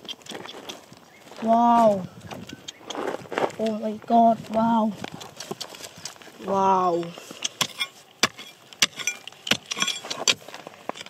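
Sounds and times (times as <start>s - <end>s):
steel bar striking rock: 7.4s - 11.0s.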